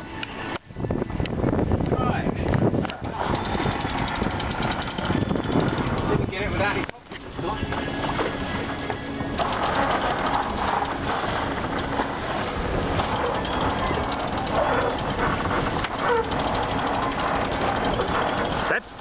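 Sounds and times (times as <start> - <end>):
wind buffeting microphone: 0.0 - 19.0
crackling rattle: 2.9 - 6.4, 8.7 - 19.0.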